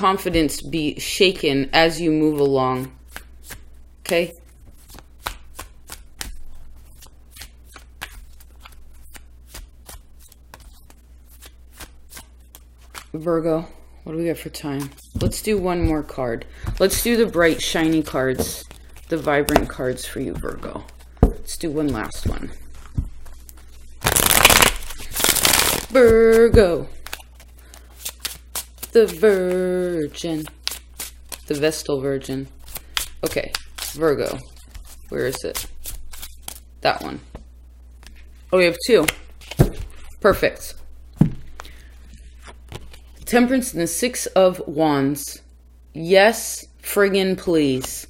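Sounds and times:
cards being shuffled: 1.9 - 13.2, 14.6 - 31.8, 32.6 - 36.7, 38.0 - 43.4.

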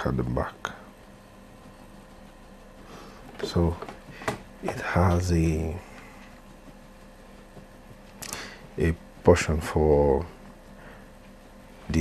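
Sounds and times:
faint hum and hiss: 0.0 - 12.0.

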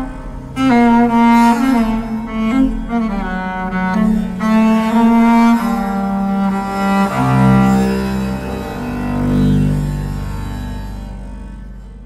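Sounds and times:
bowed double bass notes: 0.0 - 12.0.

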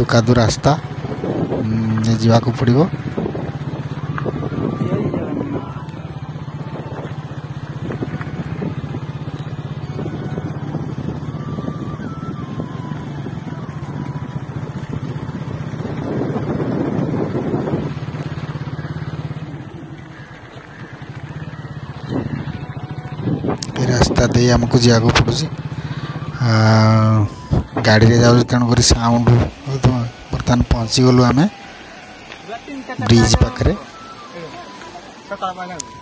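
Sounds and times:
motorcycle engine running: 0.0 - 36.0.

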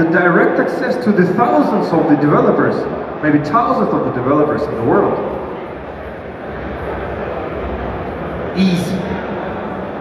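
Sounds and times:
low rumble of hall background noise: 0.0 - 10.0.

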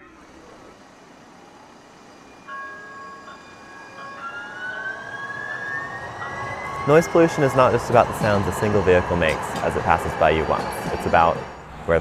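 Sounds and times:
pair of steady tones: 0.0 - 11.9
streetcar motors whining: 0.0 - 12.0
road noise: 4.0 - 12.0.

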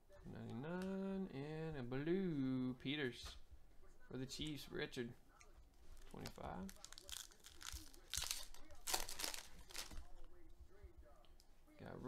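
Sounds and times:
foil wrapper tearing and crinkling: 6.0 - 10.1.

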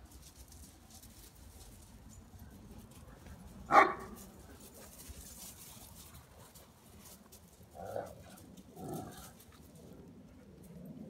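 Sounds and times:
dog barking: 3.7 - 4.2.

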